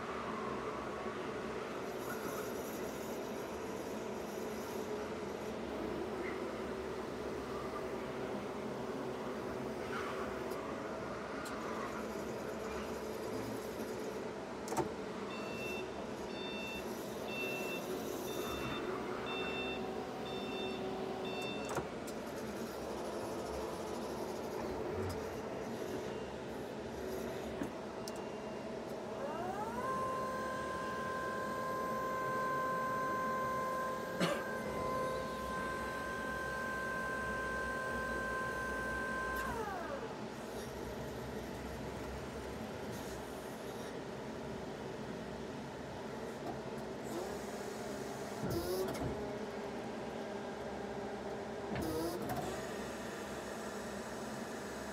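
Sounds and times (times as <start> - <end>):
short alarm beeps: 15.3 - 21.7
hydraulic pump motor whine: 28.9 - 40.8, 50.8 - 54.9
electric motors whining: 29.0 - 40.2.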